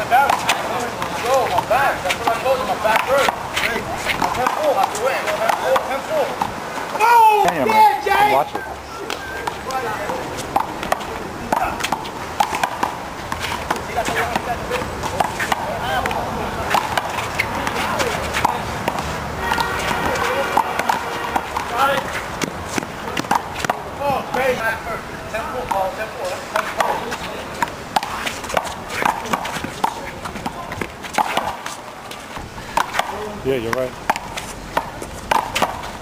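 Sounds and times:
players shouting: 0.0s - 36.0s.

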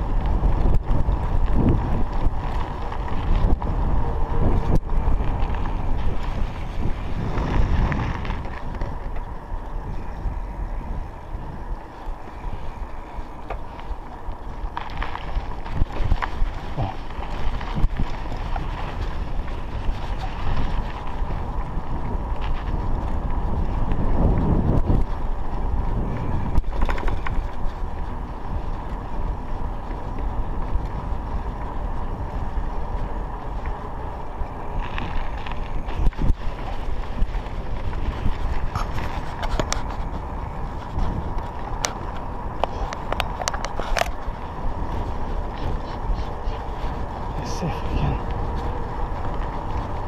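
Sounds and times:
bike tyres rolling on tarmac: 0.0s - 50.0s
wind buffeting microphone: 0.0s - 50.0s.

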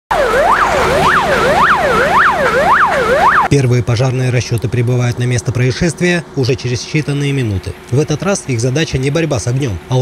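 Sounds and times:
fire engine siren yelping: 0.1s - 3.5s.

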